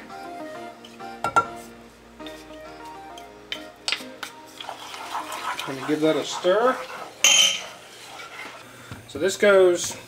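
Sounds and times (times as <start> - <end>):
stirring in a pan: 4.2 - 8.7.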